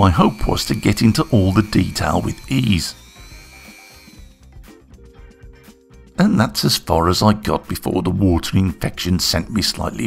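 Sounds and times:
rotary tool grinding metal: 0.0 - 4.6
background music: 0.0 - 10.0.

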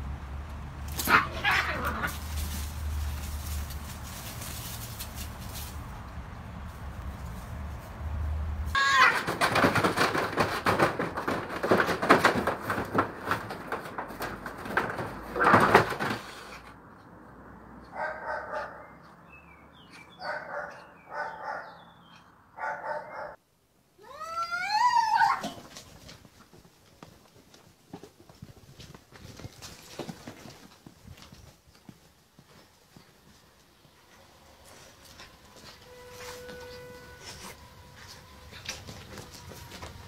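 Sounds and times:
cats scuffling and screeching: 0.8 - 8.1, 8.7 - 16.8, 24.8 - 40.0
cat yowling: 1.0 - 2.2.

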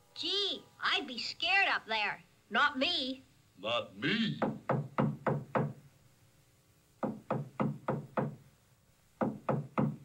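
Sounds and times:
knocking on a door: 4.4 - 5.8, 7.0 - 8.4, 9.2 - 10.0.

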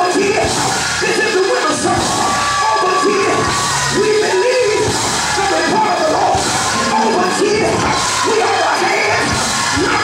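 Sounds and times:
congregation cheering and shouting: 0.0 - 10.0
loud gospel music: 0.0 - 10.0
man shouting into a microphone: 0.0 - 10.0.

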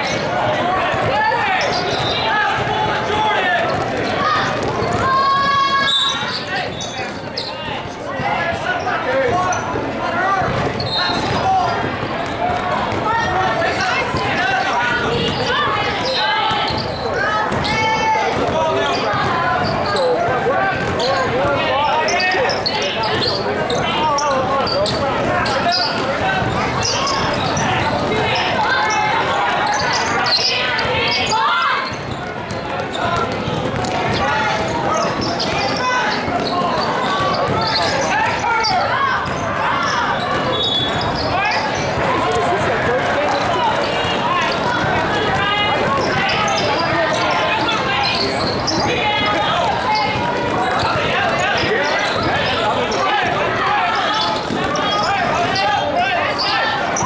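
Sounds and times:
shouting and chatter: 0.0 - 57.0
basketball bouncing on court: 0.1 - 8.7, 9.3 - 14.4, 15.0 - 52.6, 54.2 - 55.6.

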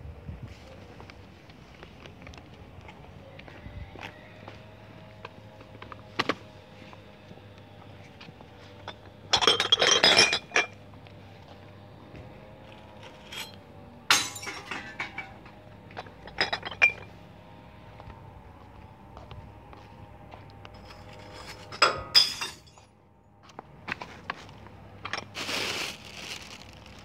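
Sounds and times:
glass bottles and jars clinking: 9.3 - 10.8, 13.2 - 15.5, 16.2 - 17.1, 21.3 - 22.9
glass bottle crashing on glass: 14.1 - 15.3, 21.8 - 22.8.

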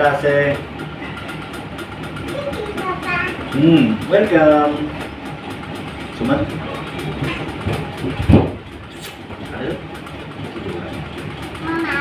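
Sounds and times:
dull thump: 7.7 - 8.7.

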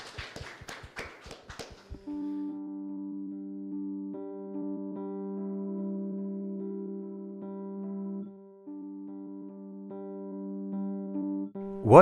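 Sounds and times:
audience applauding: 0.0 - 2.1.

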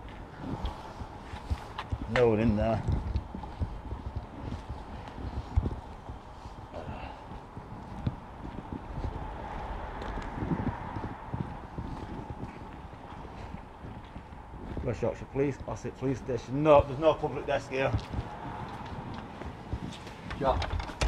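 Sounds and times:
footsteps on paving: 0.0 - 20.6.

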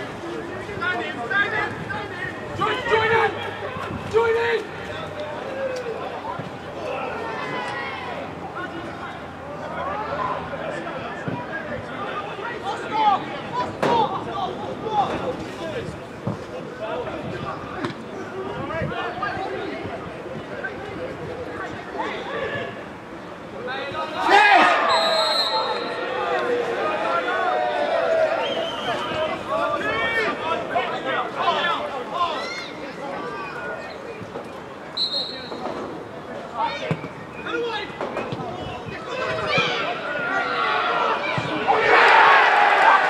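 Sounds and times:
players shouting: 0.0 - 15.7, 23.6 - 34.0, 36.5 - 43.0
referee whistle blast: 24.8 - 26.0, 35.0 - 35.6.

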